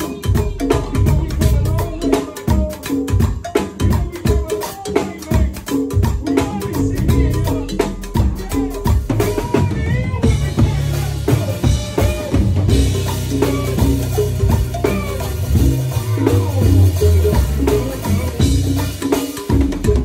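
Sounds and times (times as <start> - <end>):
drum kit played with sticks: 0.0 - 20.0
live band music: 0.0 - 20.0
low bass notes: 0.4 - 2.2, 6.8 - 20.0
keyboard lines: 9.0 - 20.0.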